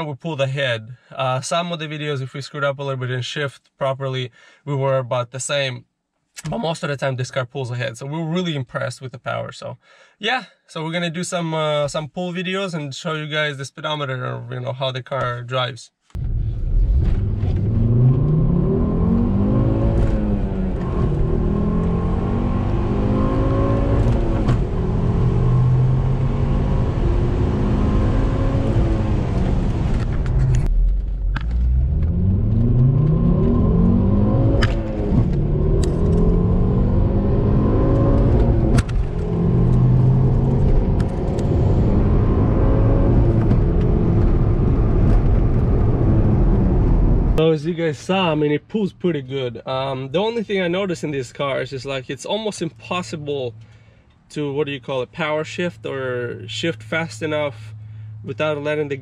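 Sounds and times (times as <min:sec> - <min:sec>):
car engine accelerating hard: 0:16.2 - 0:47.4.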